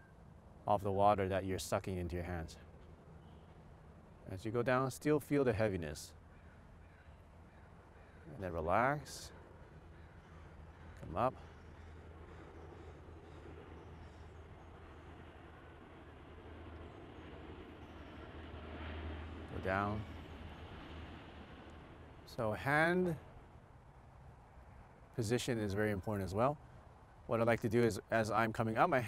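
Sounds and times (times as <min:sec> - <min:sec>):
low hum: 0:00.0 - 0:28.9
faint background noise: 0:00.0 - 0:29.0
faint bird calls: 0:01.9 - 0:04.9, 0:05.5 - 0:28.5.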